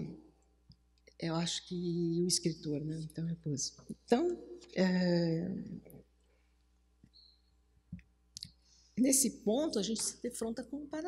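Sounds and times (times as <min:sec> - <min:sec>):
person speaking: 0:01.1 - 0:06.1, 0:08.4 - 0:11.0.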